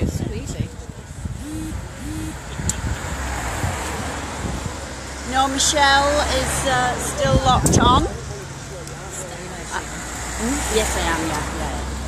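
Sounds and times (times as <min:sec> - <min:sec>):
road vehicle passing: 0:00.7 - 0:12.0.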